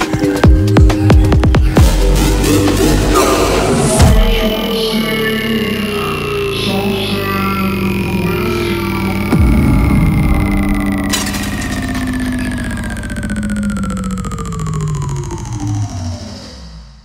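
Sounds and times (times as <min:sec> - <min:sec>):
falling synth sweep: 0:01.7 - 0:17.0
heavy bass hit: 0:07.7 - 0:15.6.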